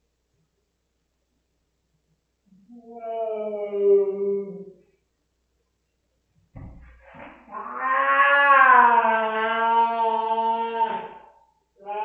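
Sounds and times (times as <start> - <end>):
soft thump: 6.5 - 7.0
cat yowling: 7.5 - 11.2.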